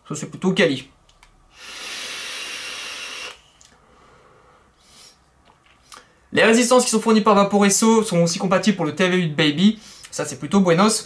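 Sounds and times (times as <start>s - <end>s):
vape puff hiss: 1.5s - 3.8s
faint breathing: 1.5s - 6.3s.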